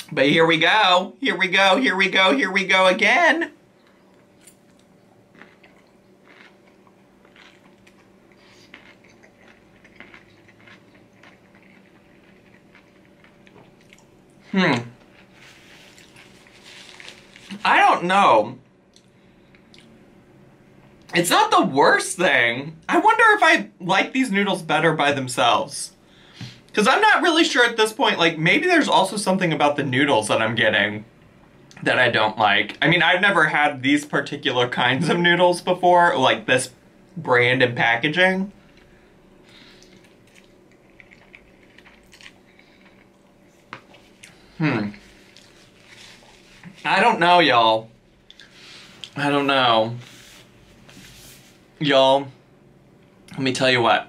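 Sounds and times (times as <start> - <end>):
wet chewing: 3.8 - 14.1, 39.5 - 44.4, 45.0 - 46.8.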